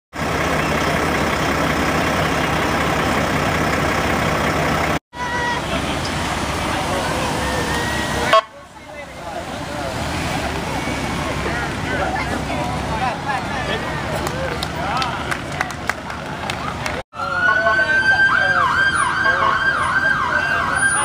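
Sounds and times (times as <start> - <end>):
diesel truck engine running: 0.1 - 21.0
crowd voices: 4.6 - 21.0.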